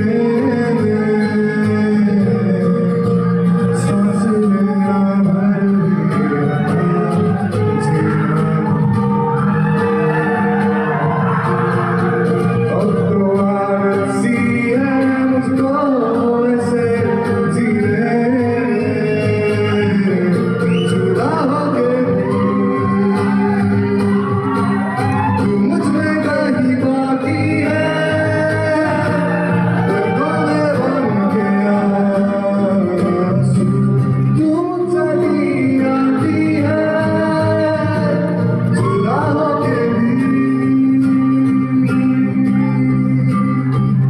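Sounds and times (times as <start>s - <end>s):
man singing through a pa: 0.0s - 9.3s, 12.7s - 24.5s, 25.3s - 44.0s
strummed acoustic guitar: 0.0s - 44.0s.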